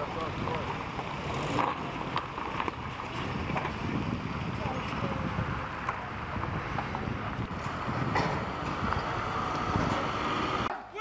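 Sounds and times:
wind buffeting microphone: 0.0 - 10.7.

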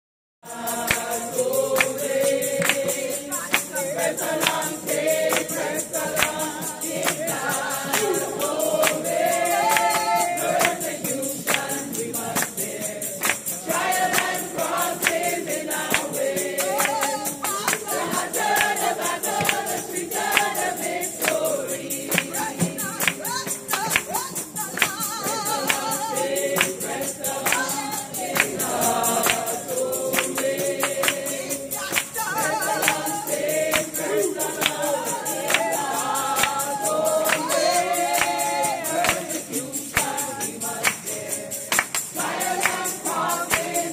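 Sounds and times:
group singing gospel: 0.4 - 43.9
tambourine jingling: 0.5 - 43.9.

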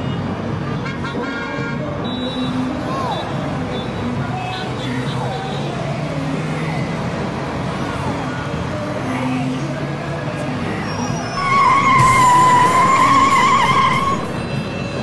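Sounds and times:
car horn honking: 11.4 - 14.6.

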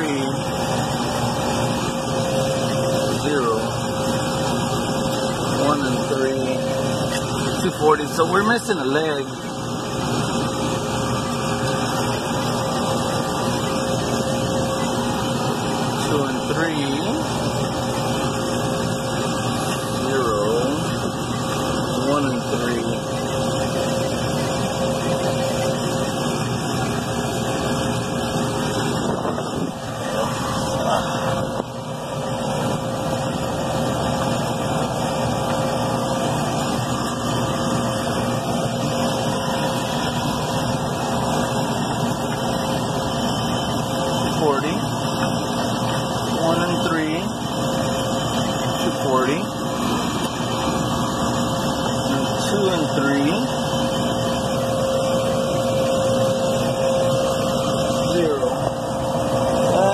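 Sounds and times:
refrigeration equipment humming: 0.0 - 59.9.

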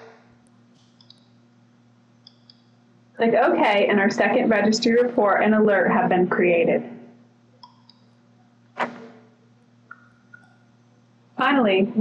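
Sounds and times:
low steady hum: 0.0 - 12.0
computer mouse clicks: 0.8 - 1.3.

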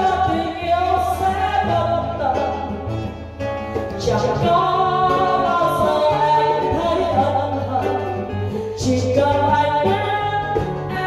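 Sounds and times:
acoustic guitars: 0.0 - 11.0.

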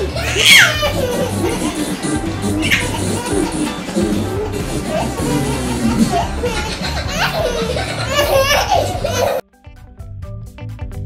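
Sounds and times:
background music: 0.0 - 11.0
toddler squealing: 0.1 - 1.4.

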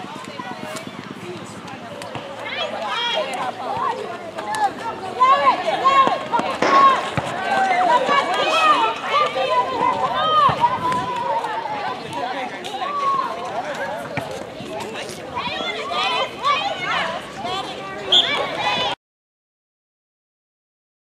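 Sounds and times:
young players shouting: 2.4 - 12.1, 15.4 - 19.0.

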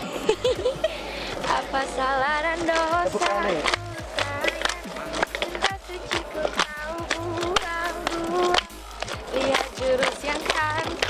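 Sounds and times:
plastic bottle rattling: 1.3 - 11.0
hand claps: 2.6 - 11.0.

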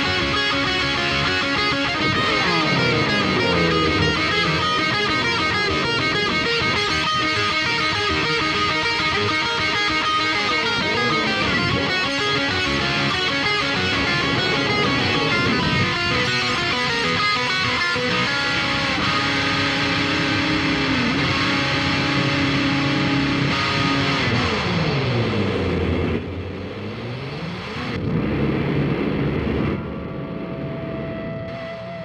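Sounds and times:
electric guitar with delay: 0.0 - 32.0.

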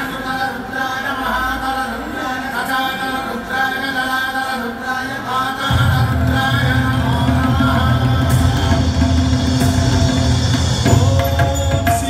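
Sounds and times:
steady drone: 5.7 - 12.0
tabla playing: 5.7 - 12.0.

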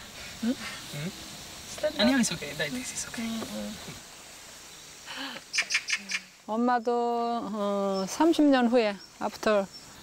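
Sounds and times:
bird chirping: 1.1 - 10.0.

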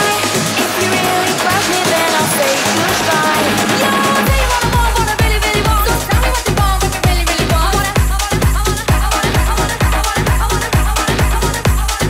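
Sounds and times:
four-on-the-floor kick drum: 0.0 - 12.0.

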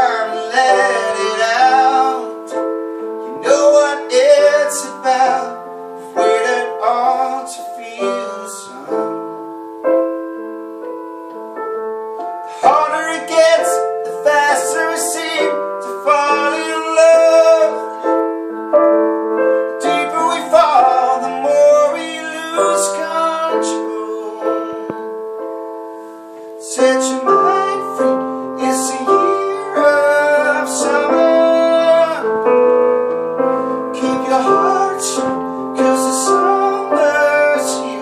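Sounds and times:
man singing pop ballad: 0.0 - 9.2, 12.4 - 18.5, 19.7 - 25.2, 26.6 - 32.9, 33.5 - 38.0
piano: 0.0 - 38.0.

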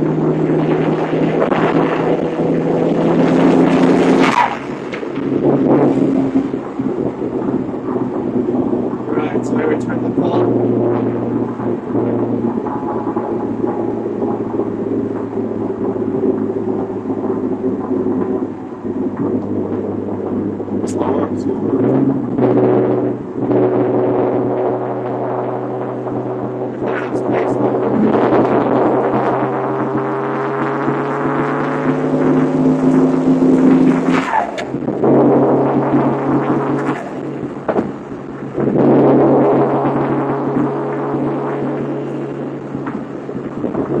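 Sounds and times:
car engine accelerating: 0.0 - 44.0.

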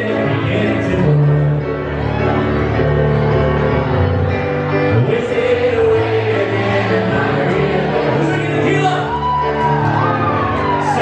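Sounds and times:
person singing: 0.0 - 2.1, 4.8 - 11.0
piano music: 0.0 - 11.0.

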